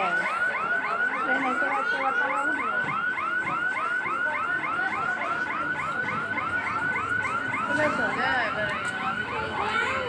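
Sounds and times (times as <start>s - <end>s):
electronic warbling alarm tone: 0.0s - 10.0s.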